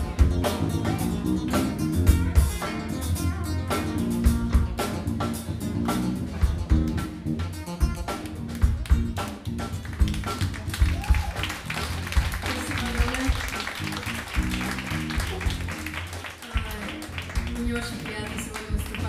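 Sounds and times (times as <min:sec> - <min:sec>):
bass line: 0:00.0 - 0:19.0
drum kit: 0:00.0 - 0:19.0
jazz band playing: 0:00.0 - 0:19.0.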